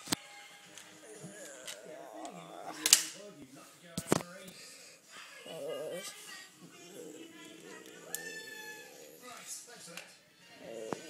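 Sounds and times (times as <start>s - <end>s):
person's voice in background: 1.1s - 3.2s, 4.0s - 9.5s.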